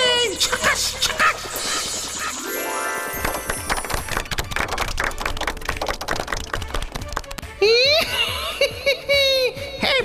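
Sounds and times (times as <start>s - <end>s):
people clapping quickly: 3.1s - 7.6s.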